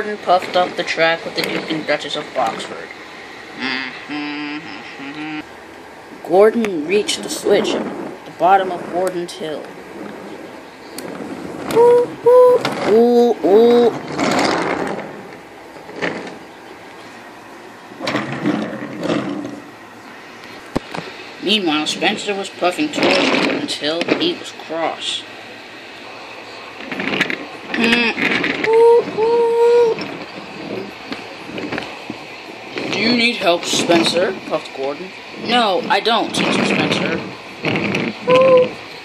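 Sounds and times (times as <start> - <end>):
steam engine whistle toots: 11.7 - 12.6, 38.2 - 38.8.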